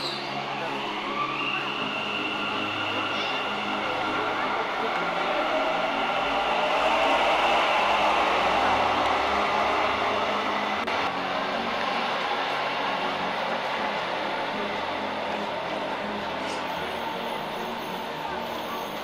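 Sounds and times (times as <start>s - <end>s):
train accelerating whine: 0.0s - 19.0s
train wheels rumbling: 2.0s - 13.2s.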